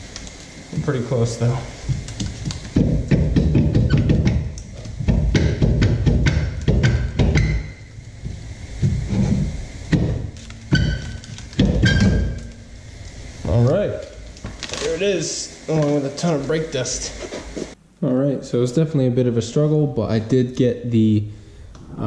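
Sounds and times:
metallic clunks and knocks: 2.7 - 7.8.

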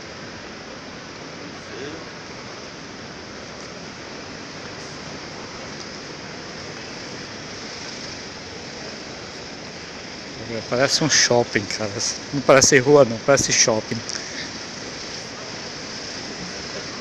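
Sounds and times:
street bustle: 0.0 - 17.0
traffic hiss: 0.0 - 17.0.

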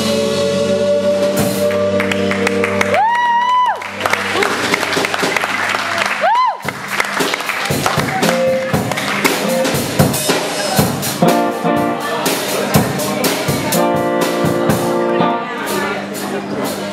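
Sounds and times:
drum kit strikes: 6.6 - 16.9
electric guitar and bass chords: 11.1 - 16.0.

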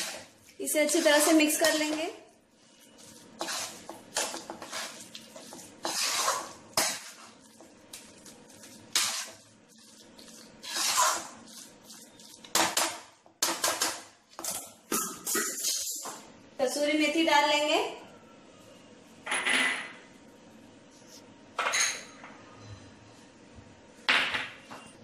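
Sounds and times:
spatula scraping a steel pan: 2.7 - 7.4, 8.9 - 12.4.

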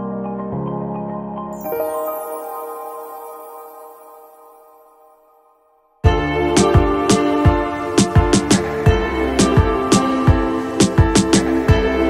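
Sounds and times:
music with sustained chords: 1.6 - 12.0.

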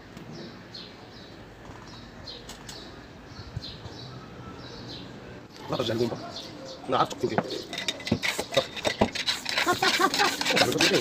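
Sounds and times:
rubber tube scraping rubs: 7.5 - 11.0.

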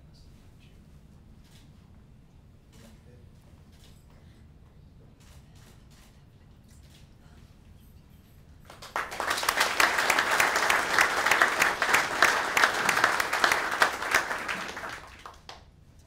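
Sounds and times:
audience applauding: 8.7 - 15.6.

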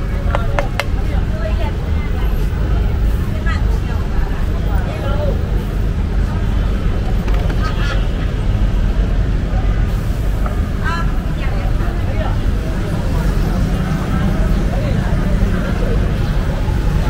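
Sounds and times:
faint voices: 0.0 - 17.0
traffic rumble: 0.0 - 17.0.

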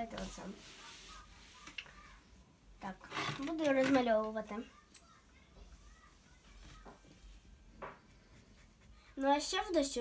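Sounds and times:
marker strokes on paper: 8.0 - 10.0.

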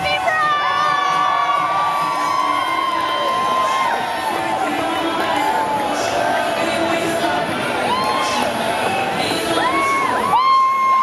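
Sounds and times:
high-pitched shouts and whoops: 0.0 - 5.9, 7.8 - 8.5, 9.5 - 11.0
crowd cheering: 0.0 - 11.0.

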